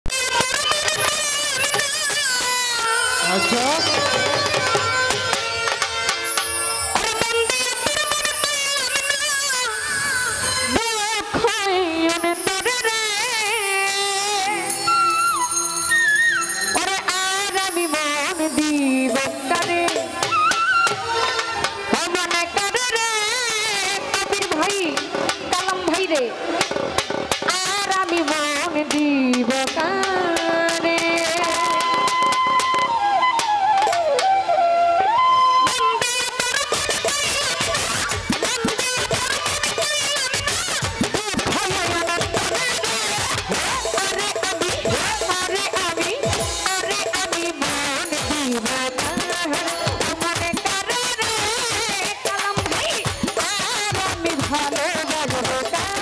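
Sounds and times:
drum and percussion strokes: 0.0 - 14.5, 16.7 - 34.4, 35.7 - 56.0
folk band playing melody: 0.0 - 56.0
reedy accompaniment: 0.1 - 56.0
hand drum strokes: 3.2 - 8.4, 19.1 - 34.4
woman singing into microphone: 10.2 - 15.3, 27.5 - 32.5, 41.4 - 56.0
woman singing folk song: 27.6 - 31.8.

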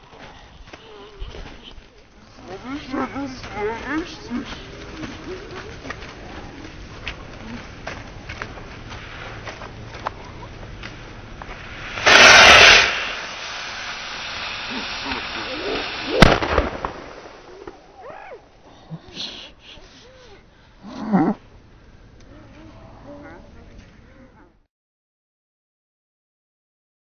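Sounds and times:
faint crackles: 0.0 - 24.5
rockets hissing: 8.5 - 18.5
rockets firing with rushing burst: 10.5 - 18.0
sharp bang: 11.9 - 13.3.

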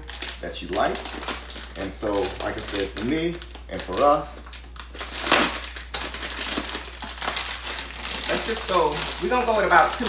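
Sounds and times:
plastic bag of beans crinkling: 0.0 - 10.0.

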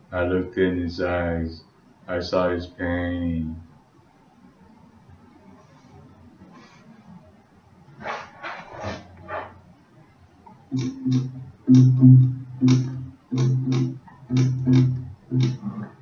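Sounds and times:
acoustic guitar strumming: 10.7 - 15.7.

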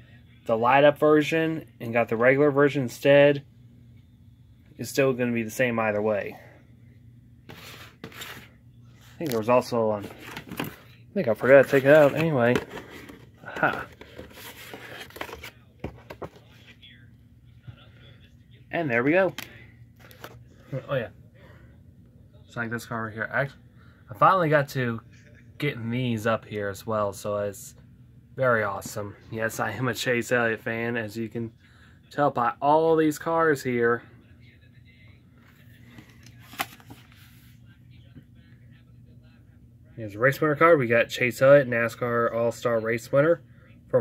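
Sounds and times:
low steady hum: 0.0 - 44.0
hand rustling cardboard: 9.2 - 16.5.

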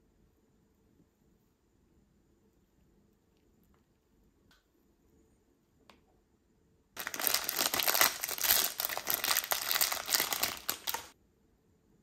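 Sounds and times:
plastic wrapper crinkling: 7.0 - 11.2.

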